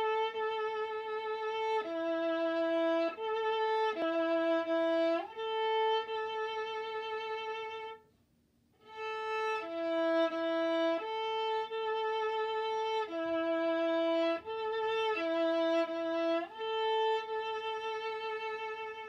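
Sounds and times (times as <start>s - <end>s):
bowed viola: 0.0s - 8.0s, 8.8s - 19.0s.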